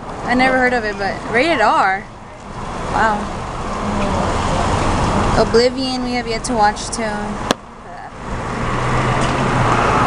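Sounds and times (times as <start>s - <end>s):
car engine hum: 0.0s - 10.0s.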